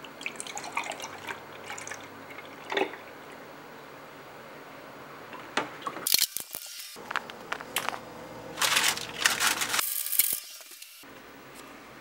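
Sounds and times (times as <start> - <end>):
crinkling and crackling with clicks: 8.6 - 10.9.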